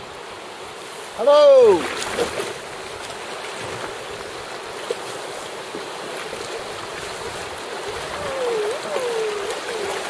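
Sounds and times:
choppy river water rushing: 0:00.0 - 0:10.0.

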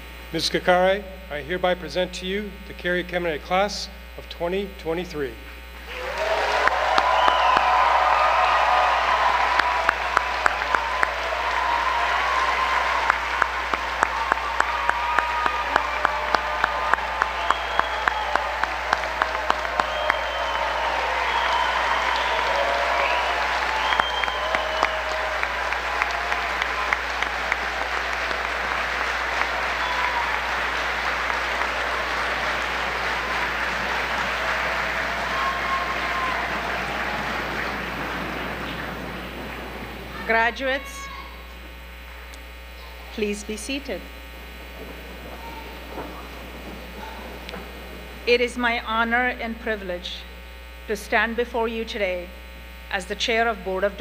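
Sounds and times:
sharp rhythmic claps: 0:05.8 - 0:41.2, 0:44.0 - 0:49.4
audience applauding: 0:05.8 - 0:41.5, 0:42.9 - 0:50.4
whoops and whistles: 0:06.0 - 0:09.1, 0:16.9 - 0:25.5, 0:29.7 - 0:30.5.

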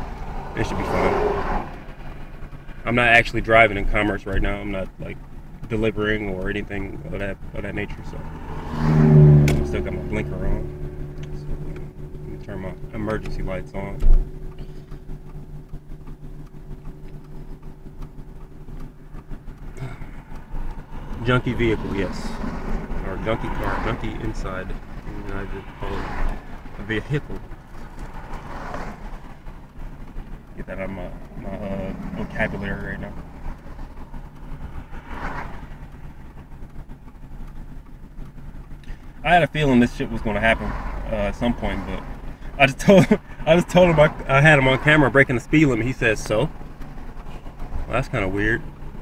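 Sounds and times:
car engine idling: 0:00.0 - 0:49.0.

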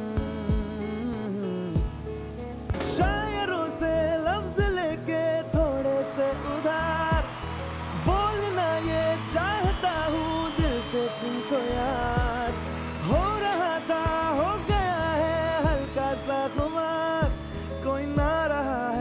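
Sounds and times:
acoustic guitar: 0:00.0 - 0:19.0
man singing: 0:00.0 - 0:19.0.

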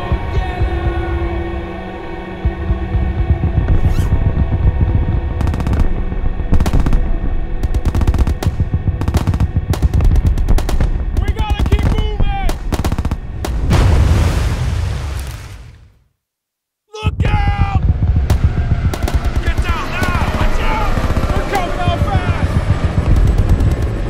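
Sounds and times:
background music: 0:00.0 - 0:14.2, 0:16.9 - 0:24.0
pistol gunshots: 0:07.6 - 0:13.7
rushing blast: 0:12.5 - 0:15.9, 0:17.8 - 0:24.0.

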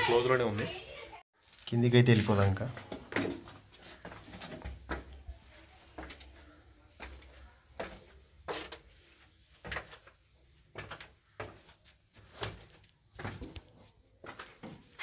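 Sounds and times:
footsteps on concrete stairs: 0:02.1 - 0:15.0.

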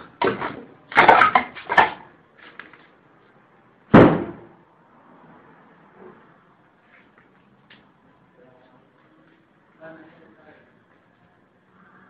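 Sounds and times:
loud bang: 0:03.9 - 0:04.6.

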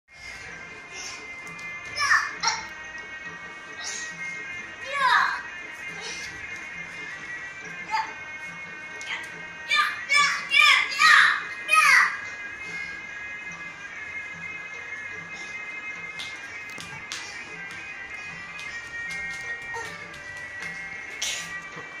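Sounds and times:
music from a television: 0:00.1 - 0:22.0.

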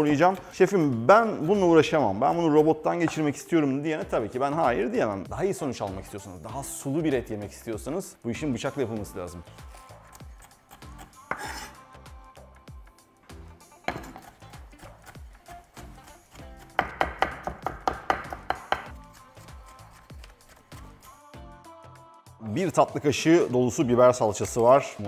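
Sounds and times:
background music: 0:00.0 - 0:25.0
knife chopping on wooden board: 0:10.8 - 0:11.8, 0:13.9 - 0:15.2, 0:15.8 - 0:19.0.

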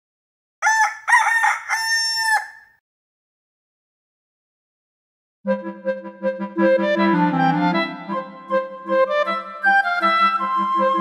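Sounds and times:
rooster crowing: 0:00.6 - 0:02.8.

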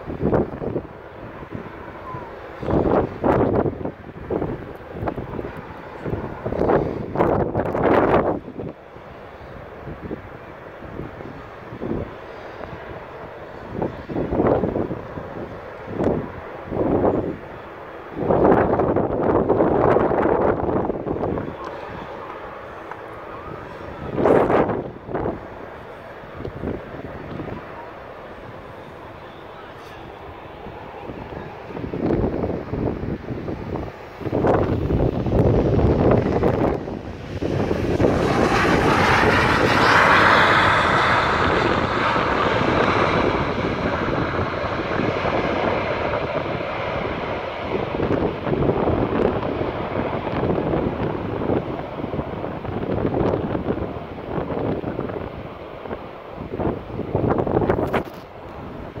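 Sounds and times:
jet engine roar: 0:00.0 - 0:59.0
wind gusting on microphone: 0:00.0 - 0:59.0.

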